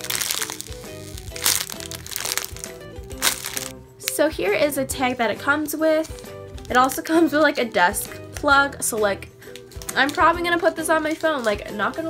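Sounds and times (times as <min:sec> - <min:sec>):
plastic packaging crinkling: 0:00.0 - 0:03.7, 0:09.5 - 0:12.0
background music: 0:00.0 - 0:12.0.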